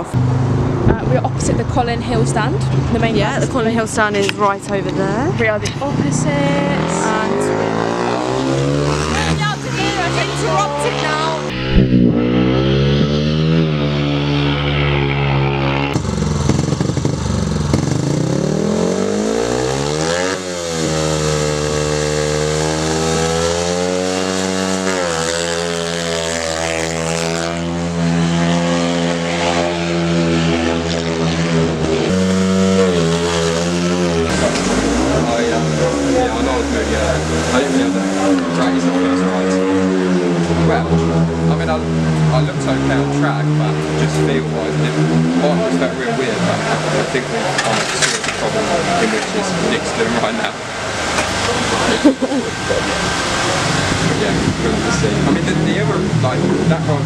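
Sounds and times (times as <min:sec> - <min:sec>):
motorcycle engine revving: 0:00.0 - 0:57.0.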